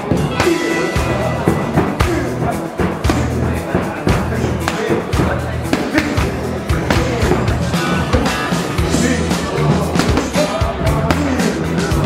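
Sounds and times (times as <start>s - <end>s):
background music with low beat: 0.0s - 12.0s
gloves and kicks striking pads: 1.5s - 8.5s, 10.0s - 10.4s.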